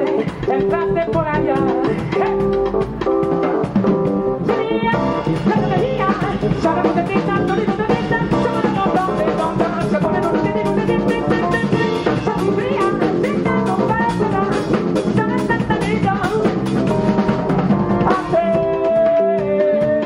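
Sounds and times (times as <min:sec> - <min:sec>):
bass: 0:00.0 - 0:20.0
drum kit groove: 0:00.0 - 0:20.0
piano: 0:00.0 - 0:20.0.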